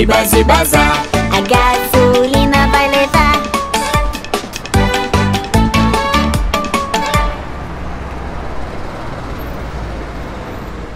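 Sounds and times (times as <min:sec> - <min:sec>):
truck engine running: 0:00.0 - 0:10.9.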